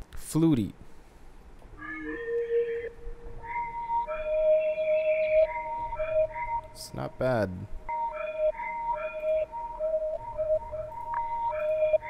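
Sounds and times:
soft flute-like synth notes: 0:01.8 - 0:07.0, 0:07.9 - 0:12.0.

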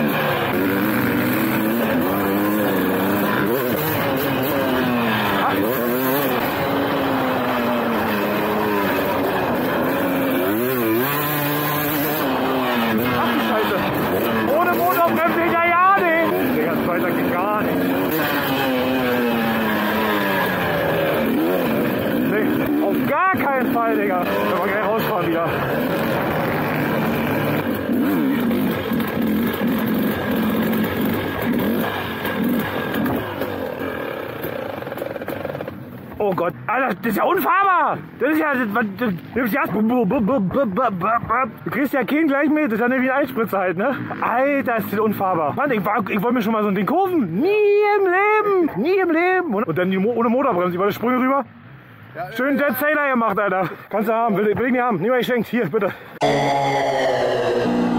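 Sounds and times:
motocross bike engine revving: 0:00.0 - 0:35.8, 0:56.0 - 0:57.9.

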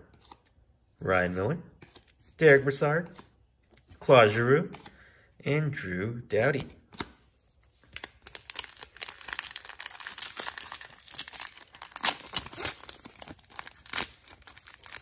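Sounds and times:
wrapper crinkling and ripping: 0:07.8 - 0:15.0.

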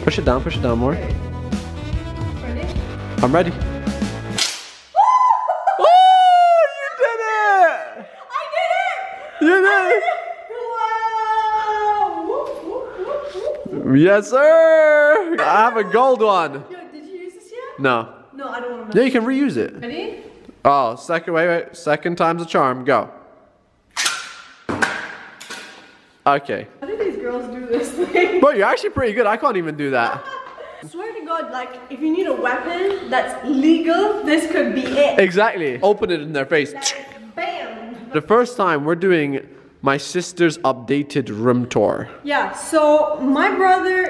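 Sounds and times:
telescopic metal stick snapping open: 0:04.4 - 0:04.8, 0:24.0 - 0:24.5
woman squealing: 0:05.0 - 0:13.7
woman laughing: 0:05.2 - 0:13.7, 0:15.0 - 0:16.2, 0:30.0 - 0:31.2.

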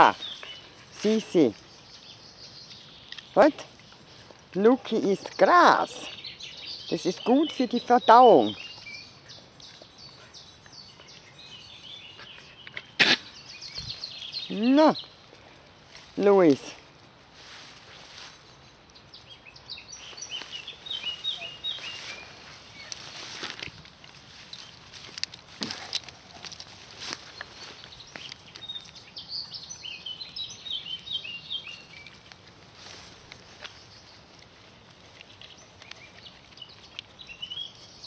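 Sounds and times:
songbird chirping: 0:00.0 - 0:38.0
rustles and scuffs in grass: 0:15.8 - 0:18.8, 0:19.9 - 0:28.9, 0:31.0 - 0:35.2.

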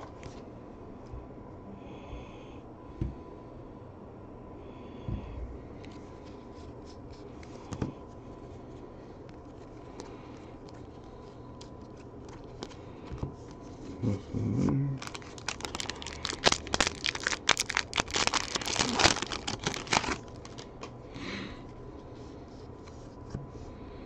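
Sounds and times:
wrapper crinkling and tearing: 0:10.6 - 0:12.8, 0:15.0 - 0:20.9.

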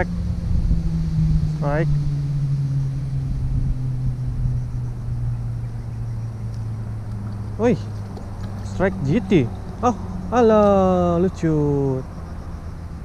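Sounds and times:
engine hum: 0:00.0 - 0:13.0
low rumble: 0:00.0 - 0:13.0.

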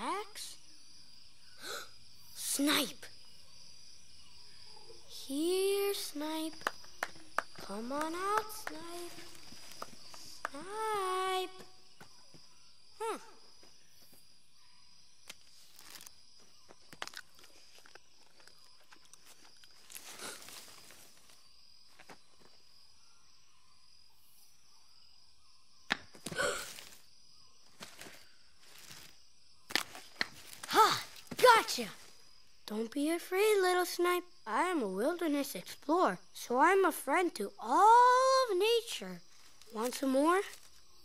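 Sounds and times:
faint high-pitched hum: 0:00.0 - 0:41.0
footsteps: 0:07.0 - 0:10.8
child calling: 0:07.6 - 0:11.8, 0:13.0 - 0:13.4, 0:30.7 - 0:32.0.

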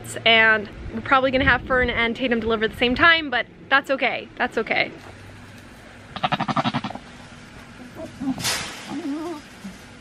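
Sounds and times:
goat bleating: 0:06.1 - 0:07.1.

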